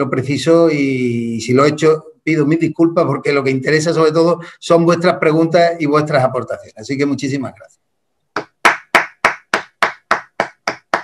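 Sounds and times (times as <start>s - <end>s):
person clapping hands: 8.4s - 11.0s.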